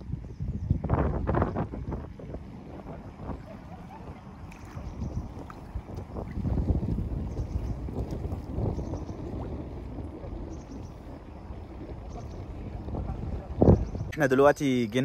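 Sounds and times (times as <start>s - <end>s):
wind buffeting microphone: 0.0s - 15.0s
small waves lapping: 2.0s - 14.2s.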